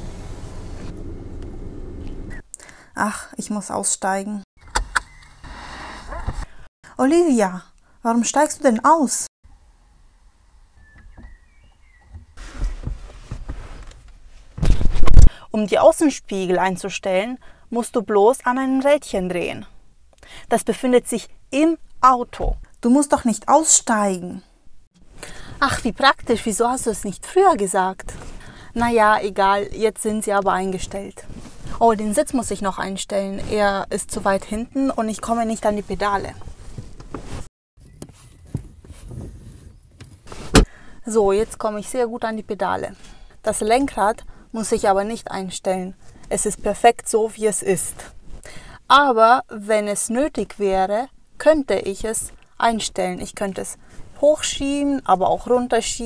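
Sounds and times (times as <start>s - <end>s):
bird chirping: 4.6s - 5.4s, 10.4s - 12.4s
rustling handling noise: 12.2s - 15.2s, 35.3s - 39.3s
loud thump: 40.4s - 40.8s.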